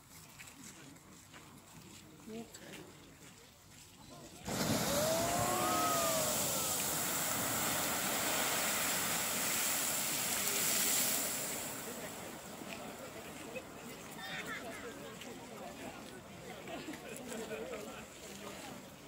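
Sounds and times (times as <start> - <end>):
geyser rush of water and steam: 4.4 - 19.0
onlookers exclaiming: 4.7 - 7.6.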